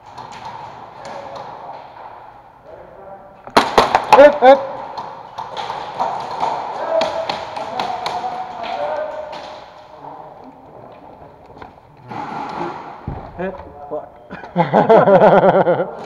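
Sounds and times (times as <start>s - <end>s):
airsoft guns firing: 3.5s - 4.4s.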